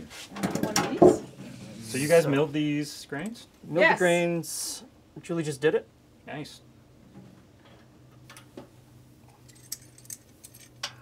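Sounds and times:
metal fittings clinking: 9.4s - 11.0s.

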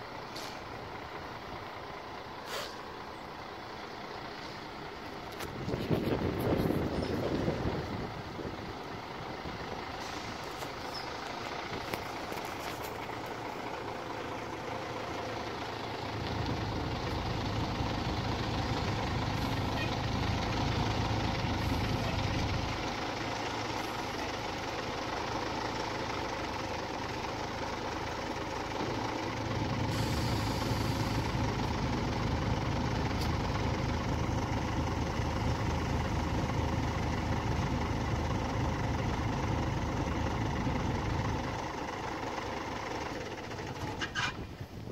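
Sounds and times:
bus diesel engine running: 0.0s - 44.9s
air hiss: 2.4s - 2.8s.

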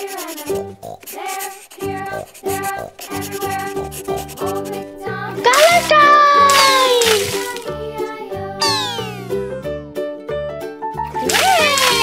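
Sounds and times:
upbeat children's music: 0.0s - 12.0s
splashy burst: 6.5s - 7.7s.

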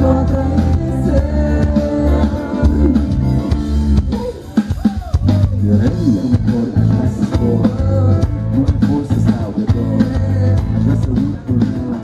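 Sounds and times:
live pop band playing: 0.0s - 12.0s
person singing: 0.0s - 12.0s.

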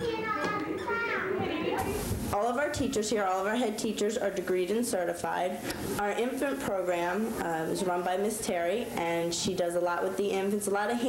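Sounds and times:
young children singing: 0.0s - 1.4s.

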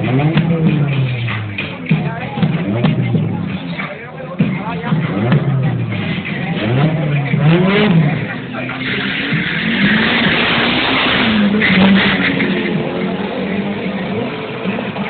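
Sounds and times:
car engine accelerating hard: 0.0s - 15.0s
loud rushing noise: 4.5s - 15.0s.

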